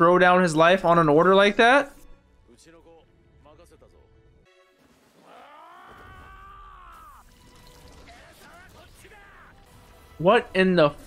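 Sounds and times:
man yelling: 5.3s - 7.2s, 8.1s - 9.6s.

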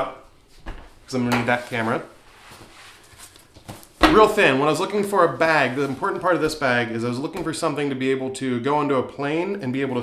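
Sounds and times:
fabric and strap rustling: 1.5s - 4.0s.

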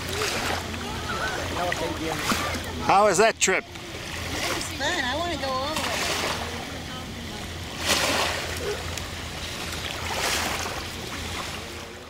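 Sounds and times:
waves lapping: 0.0s - 12.0s.

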